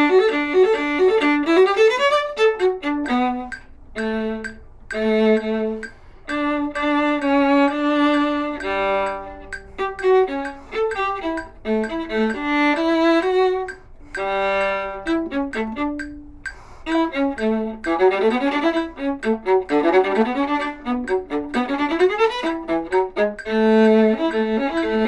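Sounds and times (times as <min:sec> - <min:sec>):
solo viola bowed: 0:00.0 - 0:25.0.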